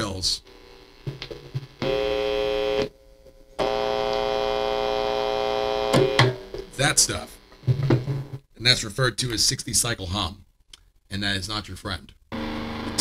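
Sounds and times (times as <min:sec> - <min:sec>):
electric guitar mains hum: 0:00.0 - 0:08.4, 0:12.3 - 0:13.0.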